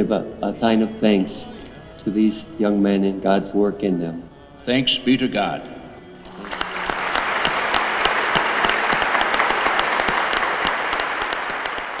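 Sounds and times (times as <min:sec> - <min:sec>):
congregation applauding: 0:06.2 - 0:12.0.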